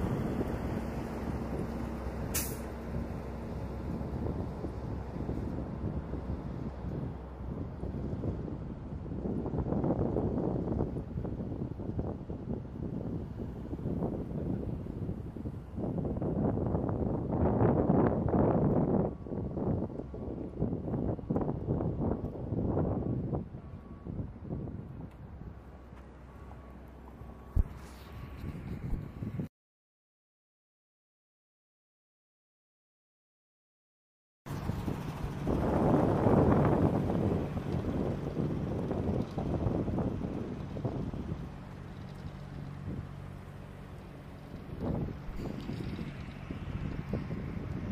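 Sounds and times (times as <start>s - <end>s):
wind buffeting microphone: 0.0s - 26.4s, 27.0s - 29.5s, 34.5s - 47.9s
helicopter rotor drone: 34.5s - 47.9s.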